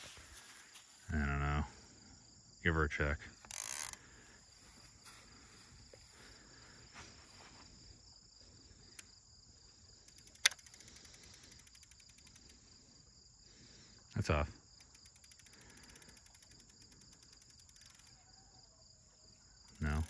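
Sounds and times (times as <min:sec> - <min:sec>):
crickets chirring: 0:00.0 - 0:20.0.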